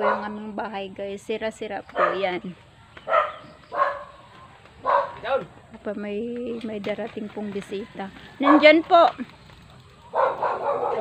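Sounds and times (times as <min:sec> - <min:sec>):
dog barking: 0:00.0 - 0:00.4, 0:02.0 - 0:02.3, 0:03.1 - 0:04.2, 0:04.8 - 0:05.4, 0:08.4 - 0:08.7, 0:10.1 - 0:11.0.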